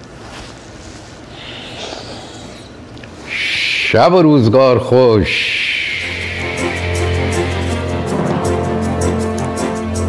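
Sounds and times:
closing music: 6.0 - 10.0.

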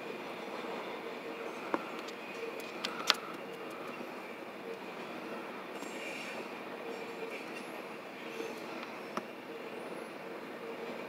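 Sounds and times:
freight train rolling on rails: 0.0 - 11.0.

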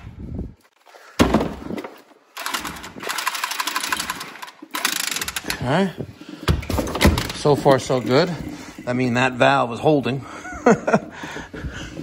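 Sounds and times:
tubing cutter rattling buzz: 2.4 - 5.6.

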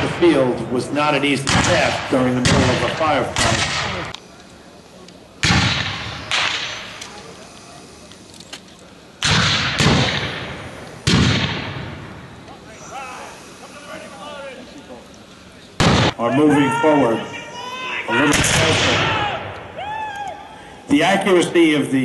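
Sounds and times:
rifle shots with echo: 1.4 - 4.1, 5.4 - 6.9, 9.2 - 12.0, 15.8 - 16.2
faint distant shouting: 16.2 - 20.6.

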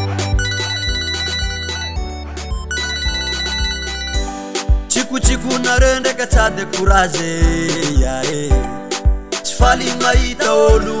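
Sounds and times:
mobile phone ringtone: 0.0 - 5.2
song beat and bass: 0.0 - 11.0.

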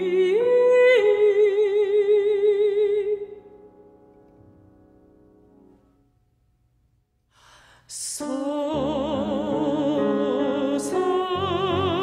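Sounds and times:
singing voice: 0.0 - 3.4, 7.8 - 12.0
singer breathing in: 7.3 - 7.9.

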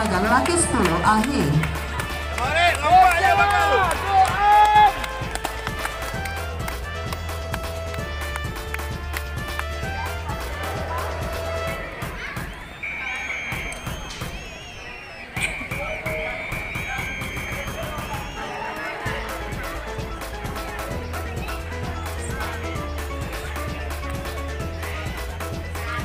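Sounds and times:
background music with low beat: 0.0 - 12.7, 15.4 - 18.4, 19.1 - 26.0.

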